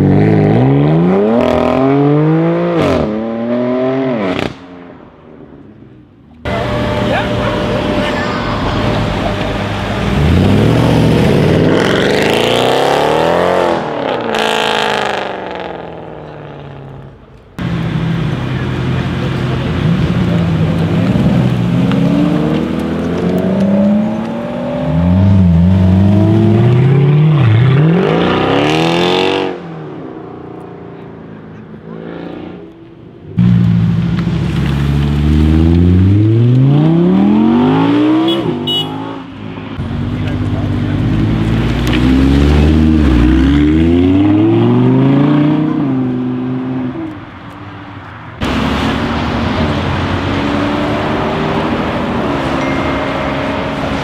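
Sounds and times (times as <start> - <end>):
car engines accelerating hard: 0.0 - 4.7, 6.4 - 54.0
sports car engine climbing: 0.0 - 54.0.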